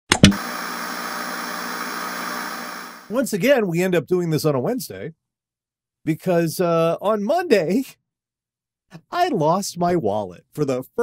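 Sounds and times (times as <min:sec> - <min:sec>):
analog tv static hiss: 0:00.3 - 0:03.2.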